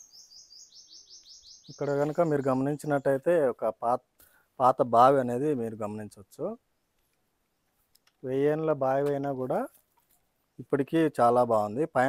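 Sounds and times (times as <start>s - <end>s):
small bird trilling: 0.0s - 2.6s
man's voice: 1.7s - 4.0s, 4.6s - 6.6s, 8.2s - 9.7s, 10.6s - 12.0s.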